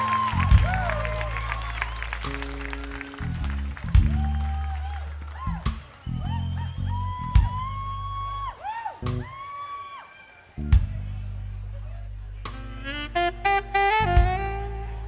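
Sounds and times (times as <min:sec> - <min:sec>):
electric bass guitar: 0:00.0 - 0:08.4, 0:09.0 - 0:09.3, 0:10.6 - 0:15.0.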